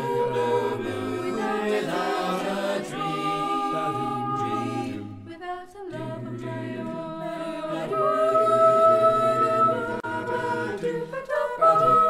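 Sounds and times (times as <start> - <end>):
a cappella group singing chords: 0.0 - 12.0.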